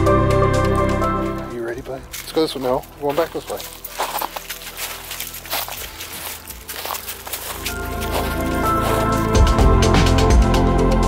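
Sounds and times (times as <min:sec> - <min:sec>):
footsteps crunching through leaves: 0:01.7 - 0:09.6.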